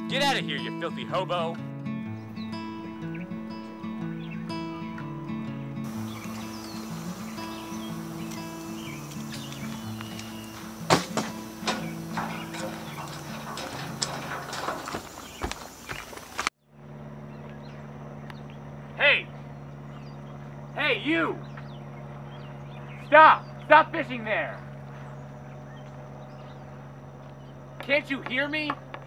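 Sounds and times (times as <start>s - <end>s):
music with slow held notes: 0.0s - 14.6s
steady low hum: 5.8s - 29.0s
sharp clicks and knocks: 8.3s - 16.5s.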